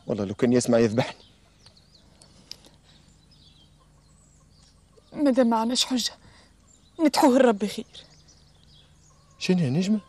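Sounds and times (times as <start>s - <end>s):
small birds calling: 0.0s - 10.0s
distant chicken clucking: 0.7s - 5.5s, 7.9s - 10.0s.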